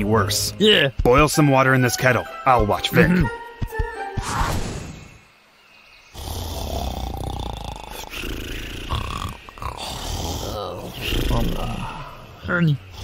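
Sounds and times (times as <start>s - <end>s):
cartoon character low rough voice: 7.2s - 12.2s.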